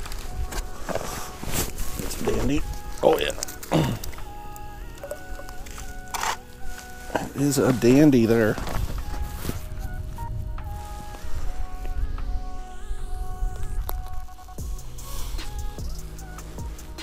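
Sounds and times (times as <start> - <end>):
music with held notes: 0.0 - 17.0.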